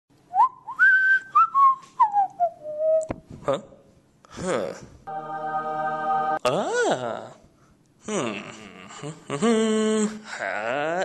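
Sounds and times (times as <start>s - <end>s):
person whistling a tune: 0.3s - 3.1s.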